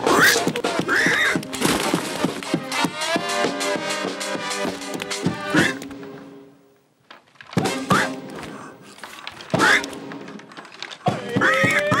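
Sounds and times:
street brass band music: 0:02.0 - 0:05.8.

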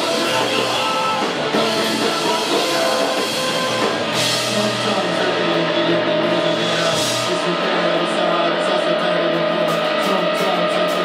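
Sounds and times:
electric guitar ringing: 0:00.0 - 0:11.0
live rock band playing: 0:00.0 - 0:11.0.

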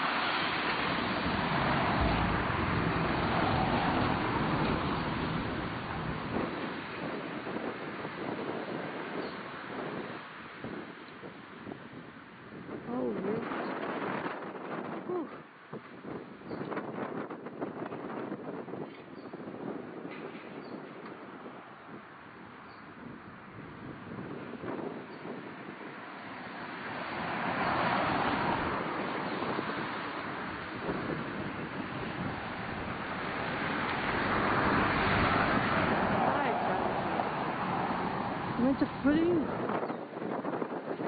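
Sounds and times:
wind blowing in gusts: 0:00.0 - 0:41.0.

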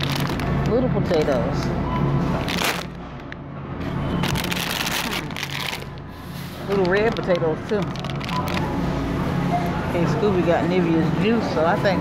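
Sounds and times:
plastic bag crinkling: 0:00.0 - 0:01.4, 0:02.4 - 0:03.0, 0:04.1 - 0:08.8.

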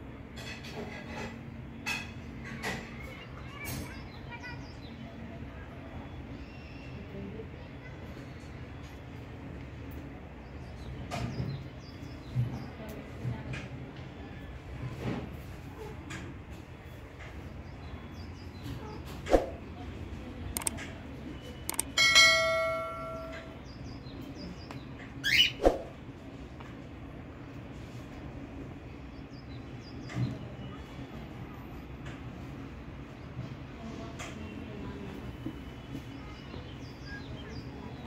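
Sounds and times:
bell ringing: 0:21.7 - 0:23.6.

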